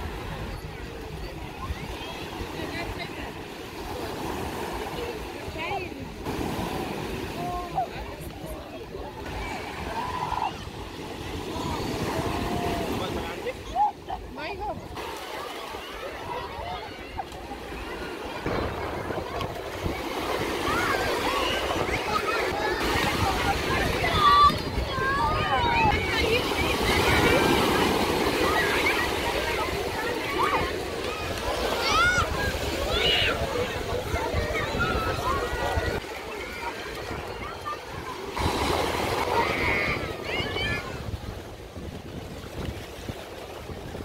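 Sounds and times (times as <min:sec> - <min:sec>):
small waves washing on sand: 0:00.0 - 0:44.0
voices and calls of bathers: 0:00.0 - 0:44.0
wind rumbling on microphone: 0:17.7 - 0:36.0, 0:36.9 - 0:44.0.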